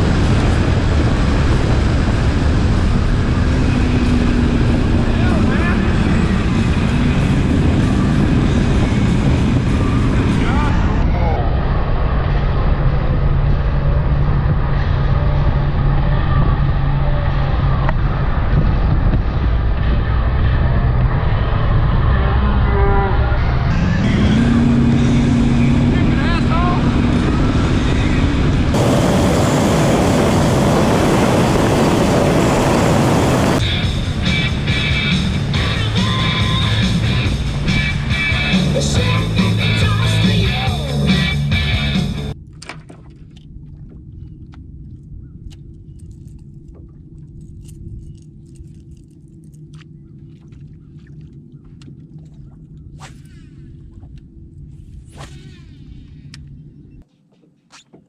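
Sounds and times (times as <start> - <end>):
wind: 0.0 - 58.0.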